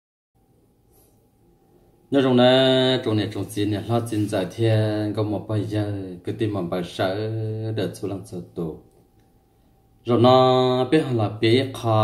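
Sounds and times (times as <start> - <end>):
faint room noise: 0.4 - 12.0.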